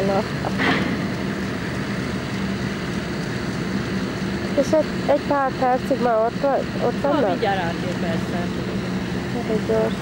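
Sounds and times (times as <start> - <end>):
ferry engine humming: 0.0 - 10.0.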